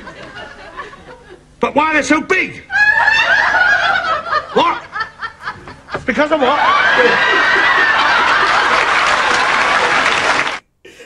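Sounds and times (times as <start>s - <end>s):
audience laughter: 0.0s - 1.6s, 2.7s - 10.6s
audience applauding: 6.4s - 10.6s.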